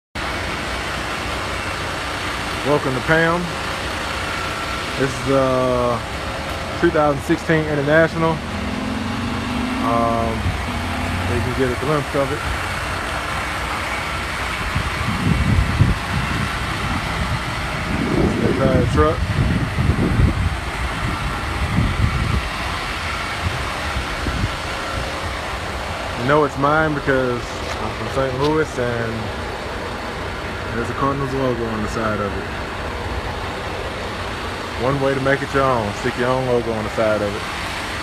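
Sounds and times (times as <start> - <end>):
diesel truck engine idling: 0.2 - 38.0.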